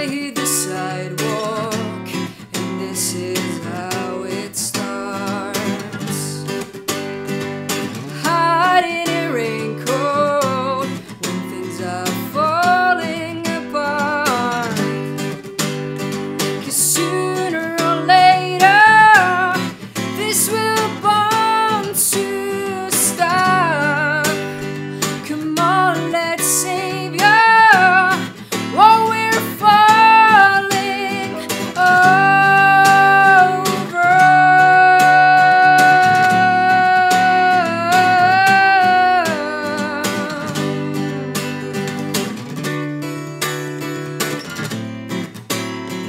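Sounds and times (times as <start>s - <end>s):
woman singing: 0.0s - 42.7s
acoustic guitar strumming: 0.0s - 46.0s.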